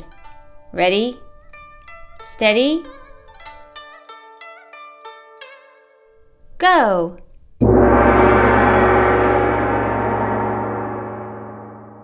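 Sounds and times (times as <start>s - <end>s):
gong ringing: 7.6s - 12.0s.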